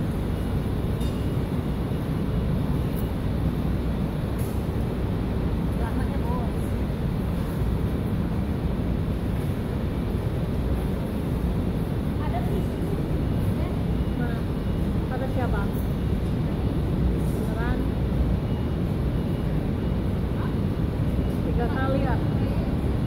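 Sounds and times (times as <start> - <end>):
low urban rumble: 0.0 - 23.0.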